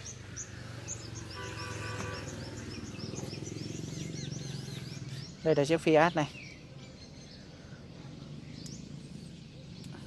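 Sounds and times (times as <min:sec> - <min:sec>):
high bird chirp: 0:00.0 - 0:07.8.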